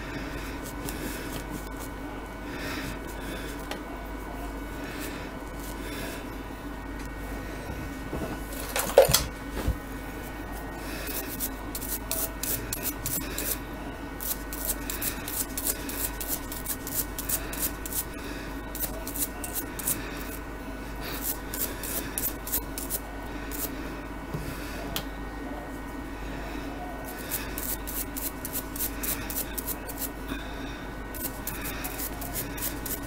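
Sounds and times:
hand scraping strokes: 10.2 - 13.6, 14.2 - 20.4, 27.1 - 30.2, 31.1 - 33.0.

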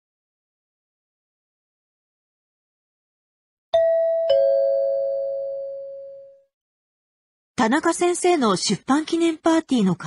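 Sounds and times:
two-note ding-dong chime: 3.8 - 6.4.

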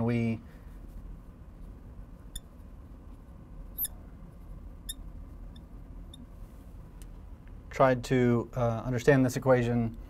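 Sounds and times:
quiet steady hum: 0.0 - 10.0
marker squeaking on glass: 3.8 - 4.0.

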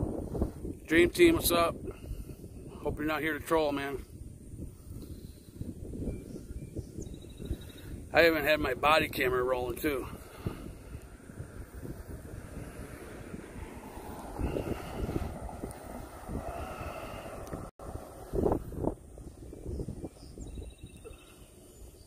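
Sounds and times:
wind buffeting microphone: 0.0 - 22.0
car driving by: 11.1 - 18.9.

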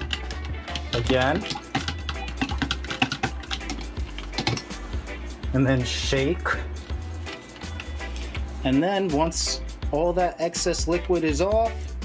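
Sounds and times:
plastic meters knocking in a cup: 0.0 - 4.7.

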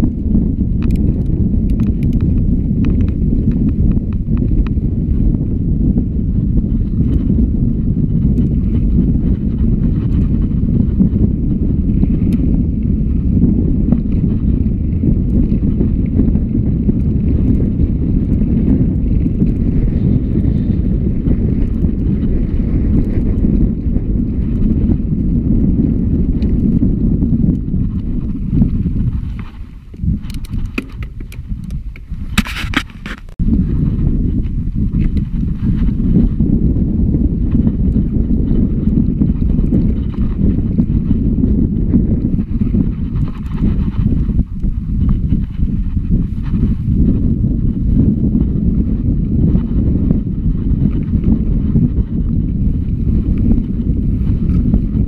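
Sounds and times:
bike tyres rumbling over stones: 0.0 - 55.0
stones and drivetrain clicking: 0.0 - 55.0
wind buffeting microphone: 0.0 - 55.0.

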